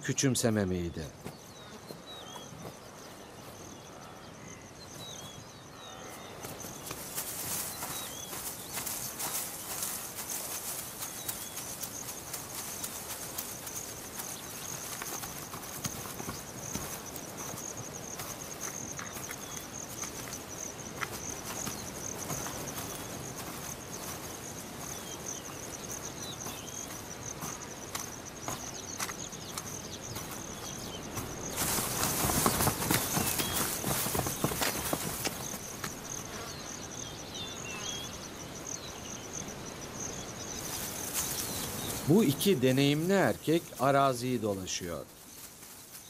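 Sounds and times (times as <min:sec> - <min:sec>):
high-pitched insect chorus: 0:00.0 - 0:46.0
footfalls: 0:06.4 - 0:36.2
feathers rustling: 0:06.6 - 0:19.4, 0:30.2 - 0:35.8.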